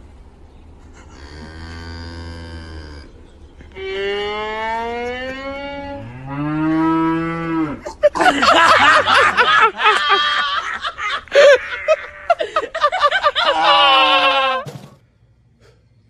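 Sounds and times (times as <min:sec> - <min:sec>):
cow mooing: 0:01.1 - 0:03.2, 0:03.8 - 0:07.9
loud laughter: 0:07.8 - 0:14.7.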